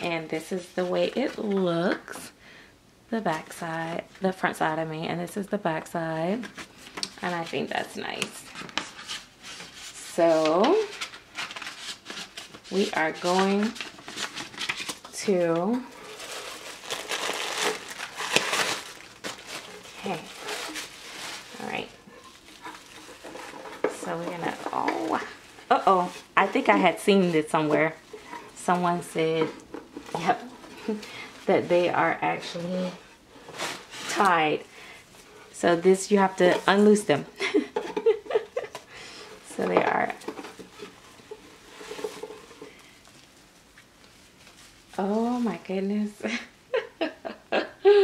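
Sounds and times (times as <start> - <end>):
plastic wrapping crinkling: 6.3 - 37.3, 38.2 - 45.9.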